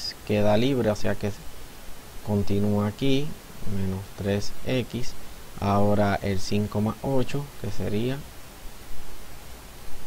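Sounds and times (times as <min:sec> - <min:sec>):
man's voice: 0:00.0 - 0:01.4, 0:02.3 - 0:08.3
recording hiss and low hum: 0:00.0 - 0:10.0.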